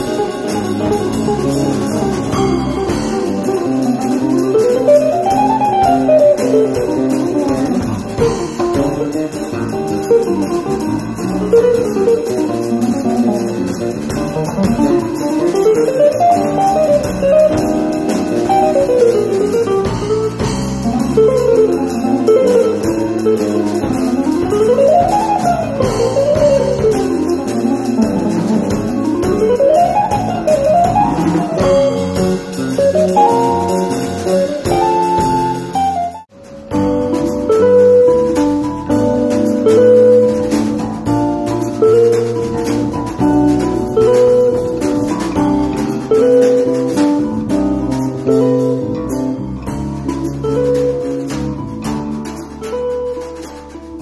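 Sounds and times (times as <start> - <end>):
jazz trio playing live: 0.0 - 54.0.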